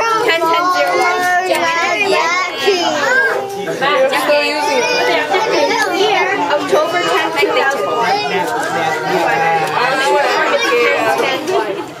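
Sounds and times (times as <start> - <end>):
children's voices: 0.0 - 12.0
people chattering: 0.0 - 12.0.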